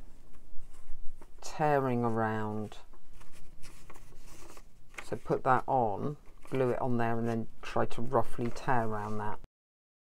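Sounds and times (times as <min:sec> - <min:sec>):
paper rustling and crinkling: 0:00.1 - 0:09.4.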